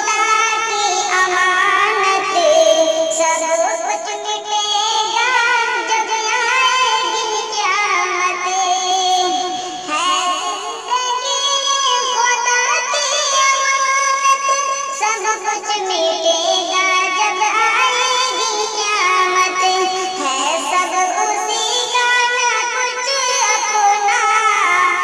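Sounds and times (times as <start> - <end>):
person singing ornamented melody: 1.8 - 12.2, 18.2 - 21.9.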